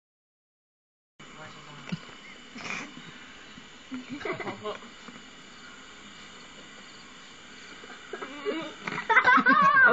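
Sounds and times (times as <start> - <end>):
camcorder tape hiss: 1.2 - 9.9
person yelling: 9.5 - 9.9.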